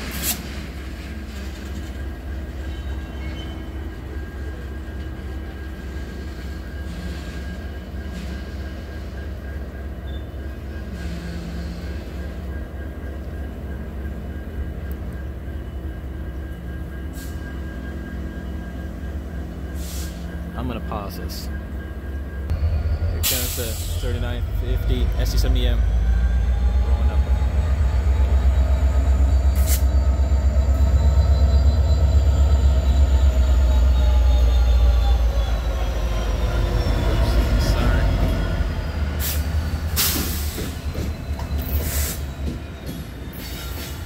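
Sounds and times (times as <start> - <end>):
diesel locomotive rumble: 0.0 - 44.0.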